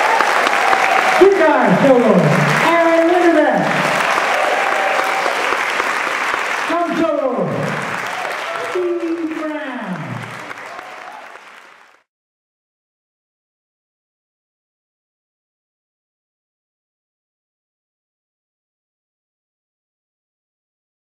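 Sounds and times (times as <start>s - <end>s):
audience applauding: 0.0s - 12.1s.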